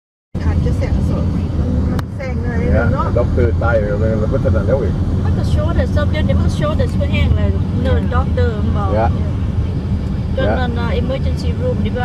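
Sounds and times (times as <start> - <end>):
car road and engine rumble: 0.4 - 12.0
people talking: 0.4 - 12.0.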